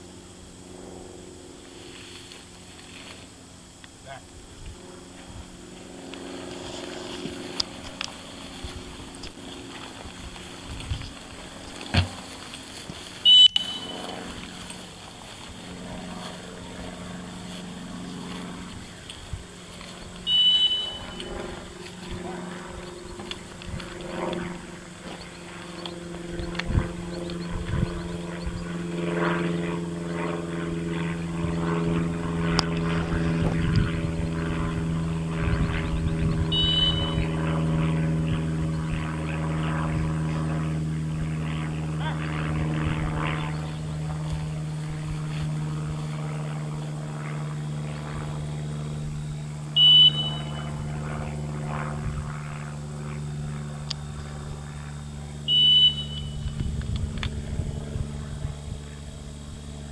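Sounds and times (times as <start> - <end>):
steady low hum: 0.0 - 59.9
dog-training whistle blasts: 13.2 - 13.9, 20.3 - 21.3, 36.5 - 37.2, 49.8 - 50.6, 55.5 - 56.4.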